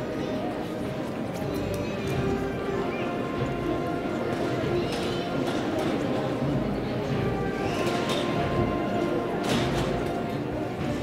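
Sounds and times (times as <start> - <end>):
processional band music: 1.5 - 11.0.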